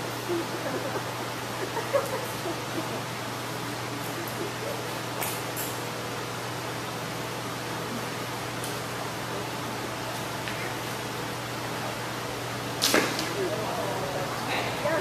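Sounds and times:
faint voices: 13.2 - 15.0.

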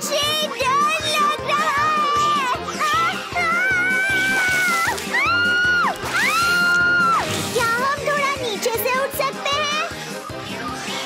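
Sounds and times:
upbeat background music: 0.0 - 11.0.

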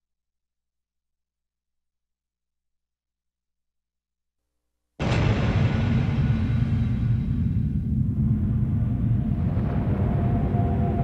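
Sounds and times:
deep rumbling drone: 5.0 - 11.0
sudden impact hit: 5.0 - 11.0.

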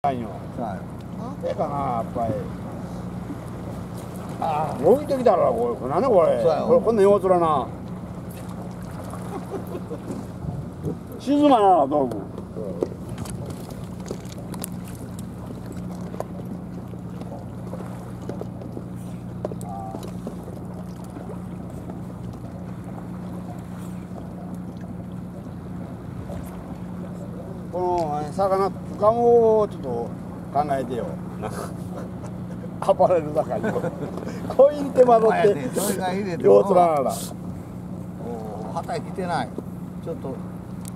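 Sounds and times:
low motor hum: 0.0 - 40.9
water noise: 0.0 - 40.9
wind: 0.0 - 40.9.

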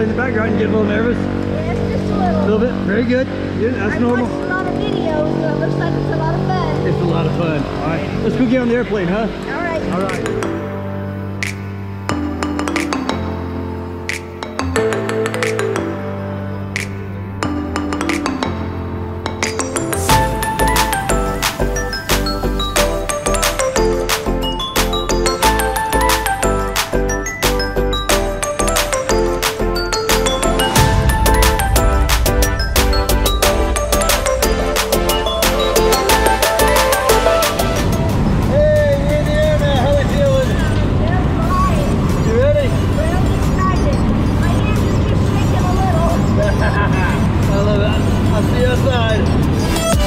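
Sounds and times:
held music chords: 0.0 - 50.0
sharp percussive strikes: 19.4 - 38.5.

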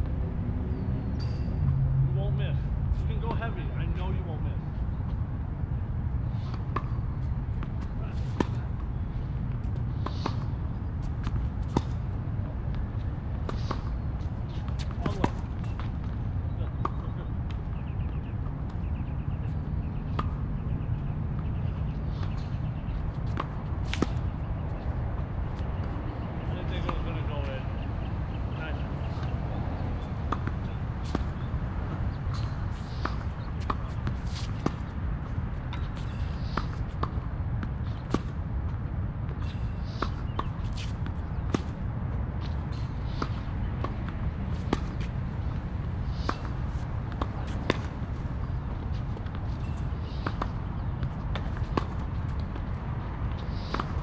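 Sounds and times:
steady low rumble: 0.0 - 18.5.

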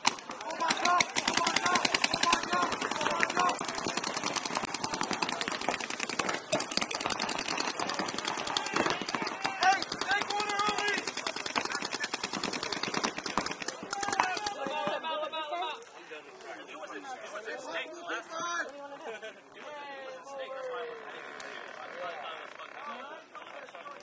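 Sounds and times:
paintball markers firing rapidly: 0.0 - 14.8.

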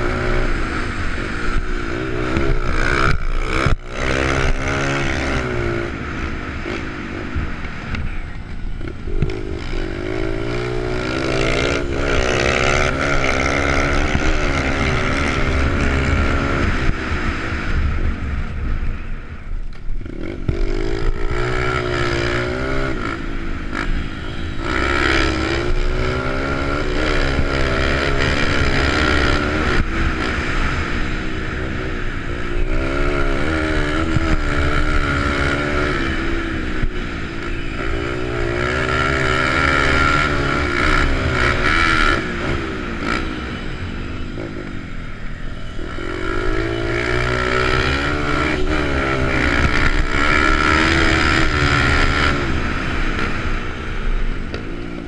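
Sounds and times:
motorbike engine revving: 0.0 - 19.0, 19.6 - 55.0.

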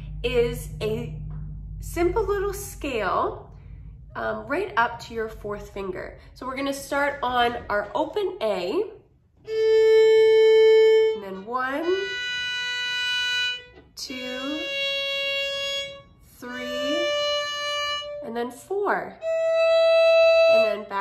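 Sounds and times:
solo violin playing scale: 9.5 - 18.2, 19.2 - 20.8.

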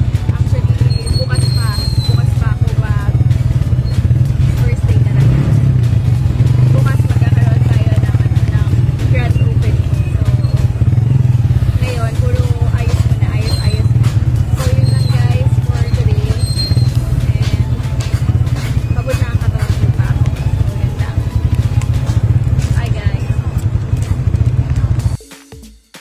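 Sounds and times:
tricycle engine droning with rattling: 0.0 - 25.2.

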